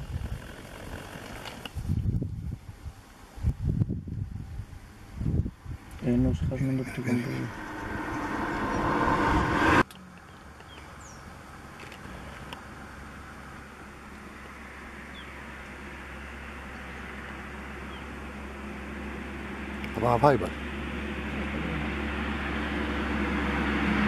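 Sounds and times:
motor vehicle approaching: 0:04.8 - 0:24.0.

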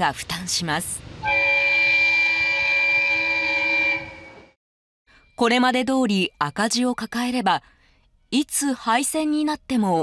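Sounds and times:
train horn blast: 0:01.2 - 0:04.6.

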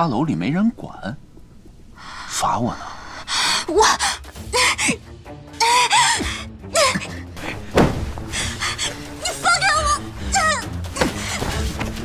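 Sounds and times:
quiet dramatic music: 0:00.0 - 0:12.0
woman crying out: 0:05.6 - 0:07.3.

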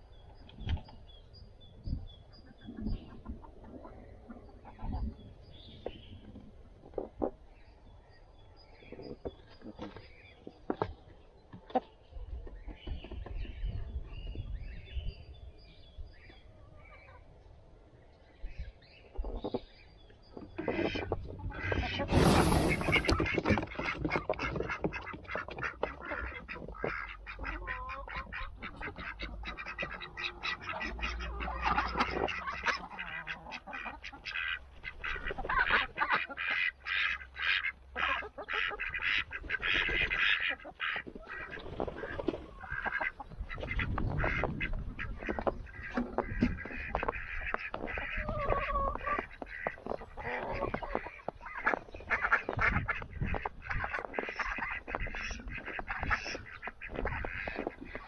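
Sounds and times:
ducks quacking: 0:20.4 - 0:58.0.

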